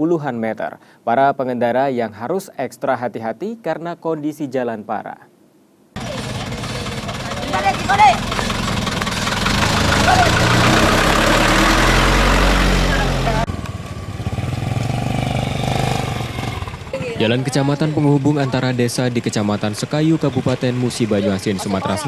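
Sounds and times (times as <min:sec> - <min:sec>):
distant vehicle engine: 0:06.0 - 0:22.0
truck engine passing: 0:06.0 - 0:22.0.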